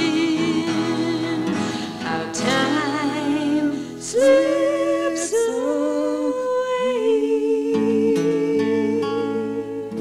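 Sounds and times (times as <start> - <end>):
acoustic guitar chord strummed: 0.0 - 10.0.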